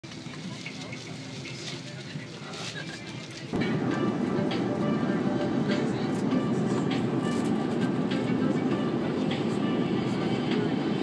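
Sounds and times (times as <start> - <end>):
airliner cabin background noise: 0.0 - 11.0.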